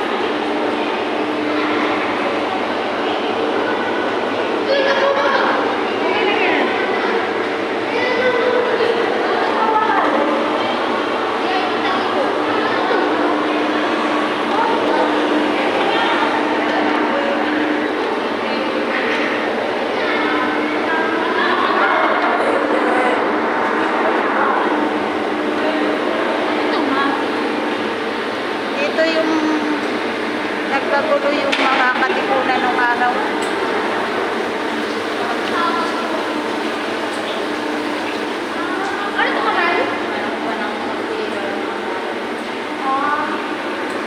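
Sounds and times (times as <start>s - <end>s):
background chatter: 0.0s - 44.0s
indistinct voices: 0.0s - 44.0s
room noise hum: 0.0s - 44.0s
steady noisy din: 0.0s - 44.0s.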